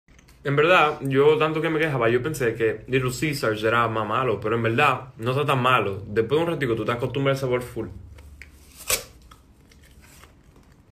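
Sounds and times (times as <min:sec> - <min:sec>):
teeth tearing cardboard: 0:08.6 - 0:10.9
faint chewing crackles: 0:09.3 - 0:10.9.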